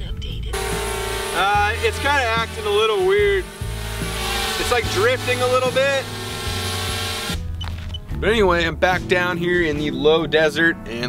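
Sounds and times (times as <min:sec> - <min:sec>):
drone propeller hum: 0:00.5 - 0:07.5.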